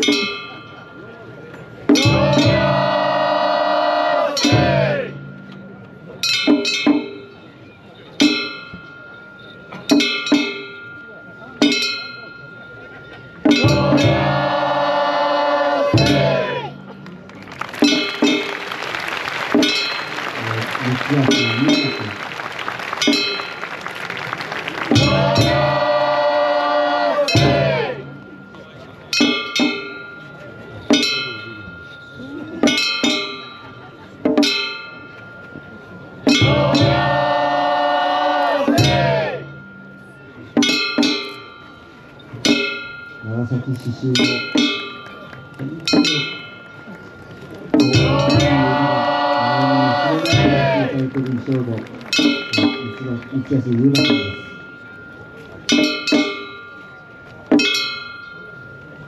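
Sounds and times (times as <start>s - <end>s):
loud group chanting: 2.0s - 5.2s, 13.6s - 16.8s, 24.7s - 28.2s, 36.3s - 39.5s, 47.9s - 51.0s.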